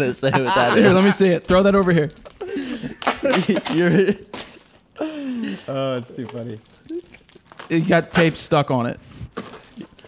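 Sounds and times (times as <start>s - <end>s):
men laughing: 0.0s - 1.4s, 2.4s - 4.4s
men talking: 0.0s - 4.4s, 5.0s - 6.7s, 7.7s - 9.1s.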